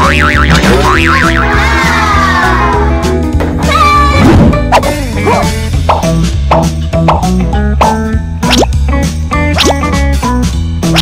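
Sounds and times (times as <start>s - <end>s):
upbeat children's music: 0.0s - 11.0s
cartoon plops: 8.4s - 8.8s, 9.6s - 9.9s.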